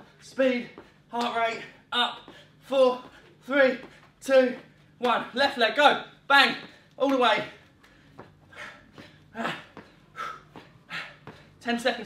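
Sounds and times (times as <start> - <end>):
light footfalls on gym floor: 0.0 - 12.0
man breathing hard in puffs: 2.2 - 4.1, 7.8 - 11.6.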